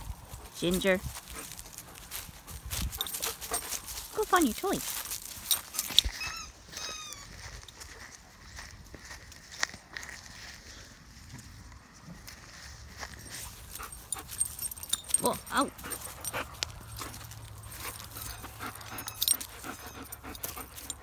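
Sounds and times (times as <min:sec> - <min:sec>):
dog squealing: 0:05.8 - 0:07.4.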